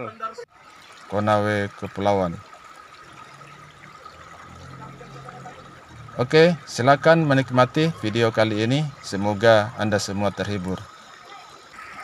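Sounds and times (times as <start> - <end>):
river water trickling over rocks: 0.5 - 12.0.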